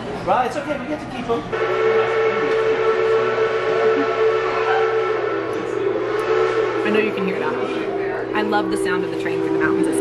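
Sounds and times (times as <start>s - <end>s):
steam locomotive whistle: 1.5s - 10.0s.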